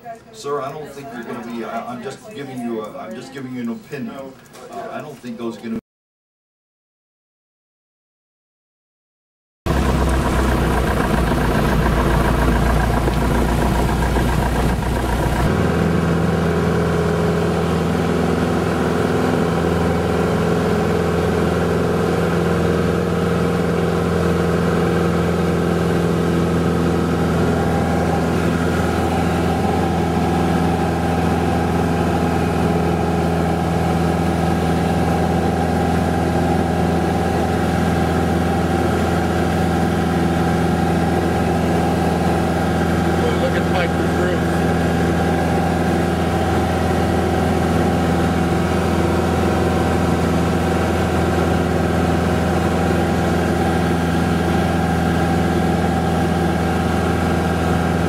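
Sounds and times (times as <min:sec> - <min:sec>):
aircraft piston engine drone: 0:09.7 - 0:16.3.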